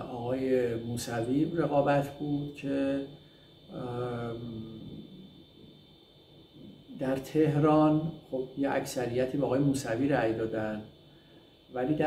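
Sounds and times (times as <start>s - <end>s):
man speaking: 0.0s - 3.1s, 3.7s - 5.2s, 6.9s - 10.9s, 11.7s - 12.0s
faint steady hum: 0.0s - 12.0s
man saying uhh: 3.7s - 5.2s.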